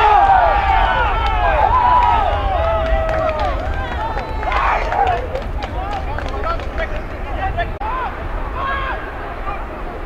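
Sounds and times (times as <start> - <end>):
people shouting and cheering: 0.0 - 10.0.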